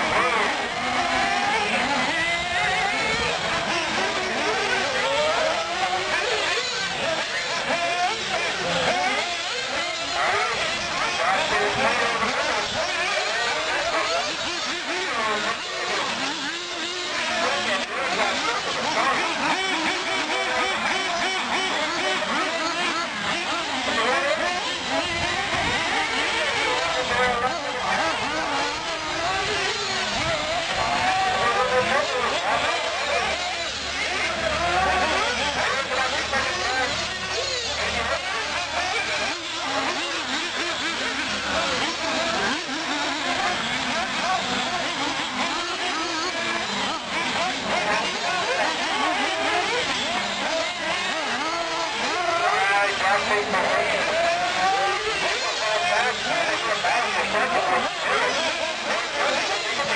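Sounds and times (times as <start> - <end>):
radio-controlled buggy motors whining: 0.0 - 59.9
voices: 0.0 - 59.9.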